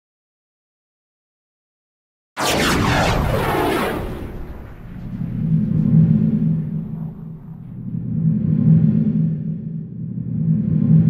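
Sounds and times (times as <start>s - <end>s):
low humming drone: 2.9s - 11.0s.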